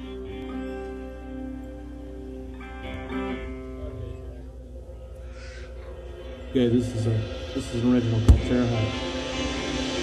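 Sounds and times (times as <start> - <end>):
guitar chords ringing: 0.0 - 4.8.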